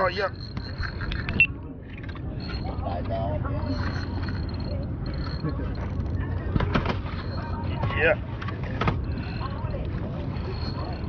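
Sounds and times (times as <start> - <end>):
small boat engine rumble: 0.0 - 11.0
thin high whine: 0.0 - 11.0
faint background voices: 0.9 - 11.0
fishing reel clicks: 3.7 - 6.2.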